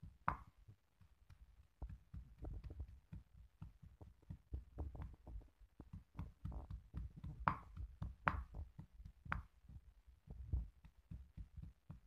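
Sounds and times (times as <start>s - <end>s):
stone pestle pounding in mortar: 0.0s - 12.0s.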